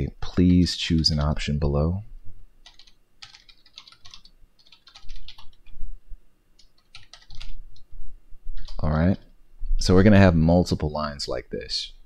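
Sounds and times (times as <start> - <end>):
typing on computer keyboard: 2.6 - 5.7, 6.6 - 7.6, 8.6 - 8.8.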